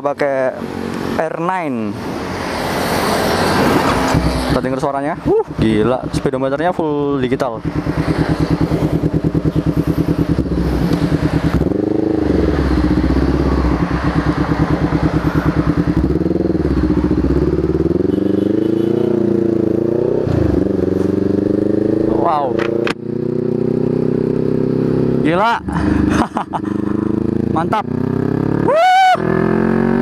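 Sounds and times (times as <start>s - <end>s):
motorcycle engine revving: 2.0s - 30.0s.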